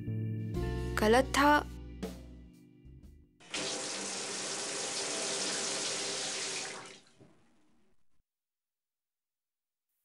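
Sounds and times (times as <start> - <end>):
tap water running into sink: 3.4 - 7.4.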